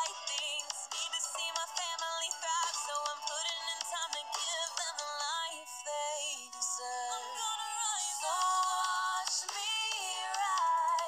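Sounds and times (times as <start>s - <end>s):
woman rapping over a beat: 0.0s - 11.0s.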